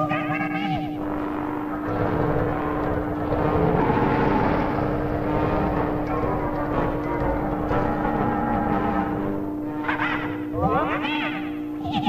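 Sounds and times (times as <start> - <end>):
steady low hum: 0.0 - 12.0
cartoon motor vehicle rumbling: 1.0 - 10.6.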